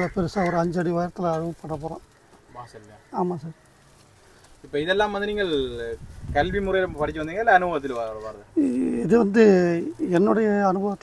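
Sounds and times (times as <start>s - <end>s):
man talking: 0.0s - 3.6s, 4.6s - 11.0s.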